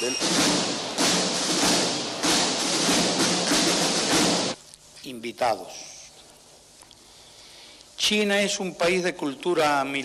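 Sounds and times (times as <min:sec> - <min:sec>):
military drum roll: 0:00.0 - 0:04.6.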